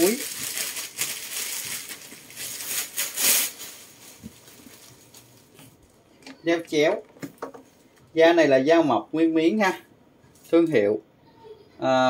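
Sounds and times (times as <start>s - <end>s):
bag crinkling and rustling: 0.0s - 6.0s.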